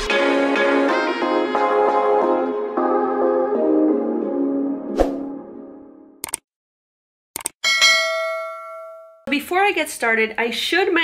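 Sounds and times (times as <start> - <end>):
double mouse click: 6.2 - 6.4, 7.4 - 7.6
notification bell ding: 7.6 - 9.3.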